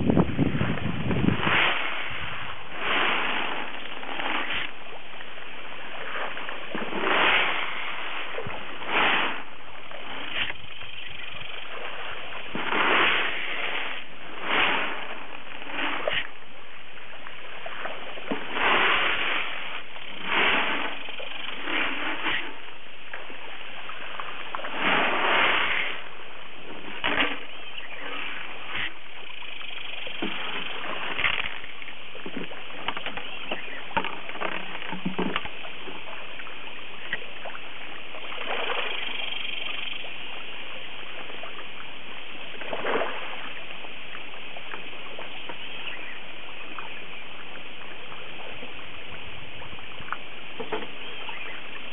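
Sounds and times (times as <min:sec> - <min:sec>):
fish splashing at water surface: 0:01.3 - 0:10.8, 0:11.4 - 0:16.4, 0:17.2 - 0:22.7.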